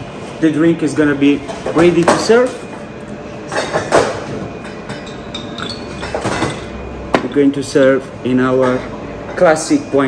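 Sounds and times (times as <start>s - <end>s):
glass jug with ice clinking: 4.9s - 6.7s.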